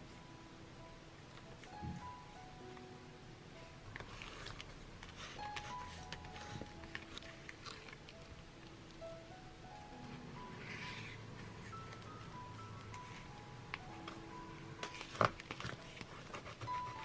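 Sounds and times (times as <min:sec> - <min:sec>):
soft background music: 0:00.0 - 0:17.0
paper rustling and clicking: 0:03.9 - 0:08.2, 0:14.8 - 0:17.0.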